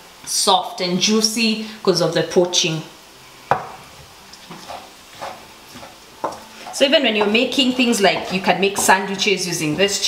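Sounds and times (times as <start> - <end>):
knife knocking on cutting board: 3.5 - 3.8.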